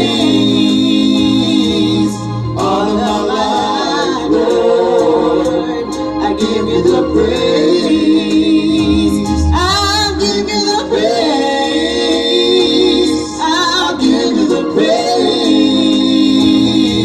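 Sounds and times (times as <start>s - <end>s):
gospel singing with vibrato: 0.0s - 17.0s
sustained keyboard chords: 0.0s - 17.0s.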